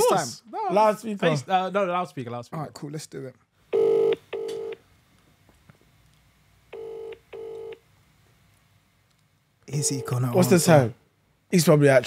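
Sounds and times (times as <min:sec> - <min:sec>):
phone ringback tone: 0:03.8 - 0:04.8, 0:06.8 - 0:07.8, 0:09.7 - 0:10.5.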